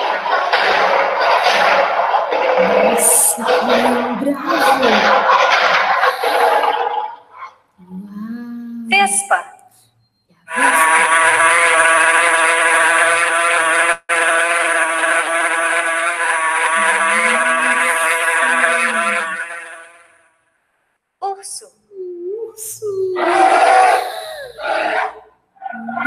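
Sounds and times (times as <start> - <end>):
wasp buzzing: 10.6 - 20.0
lion roar: 23.2 - 26.0.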